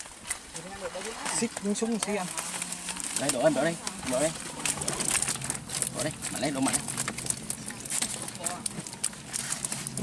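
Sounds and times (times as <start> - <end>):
fish flapping and slapping: 0.0 - 10.0.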